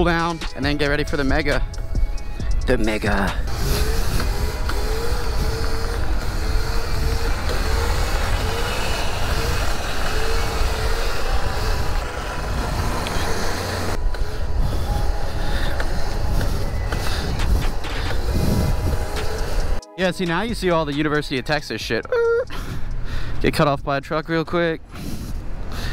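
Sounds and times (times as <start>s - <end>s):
traffic noise: 0.0s - 25.9s
wind rumble on microphone: 3.4s - 19.8s.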